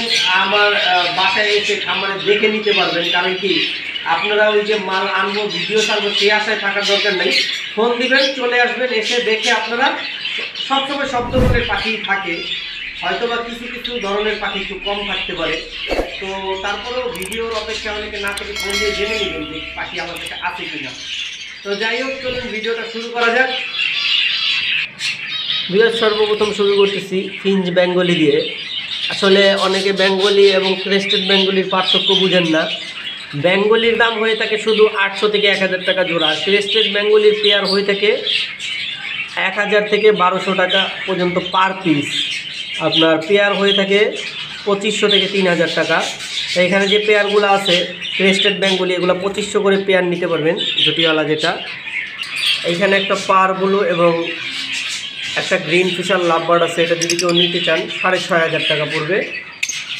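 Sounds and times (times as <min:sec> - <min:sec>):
birds chirping and squawking: 0:00.0 - 0:59.9
man talking: 0:10.7 - 0:21.0, 0:21.7 - 0:23.5, 0:55.4 - 0:59.4
man speaking: 0:10.8 - 0:21.0, 0:21.7 - 0:23.0, 0:55.4 - 0:59.3.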